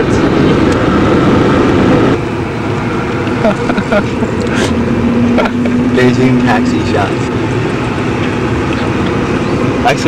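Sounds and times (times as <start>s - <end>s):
car road and engine noise: 0.0s - 10.0s.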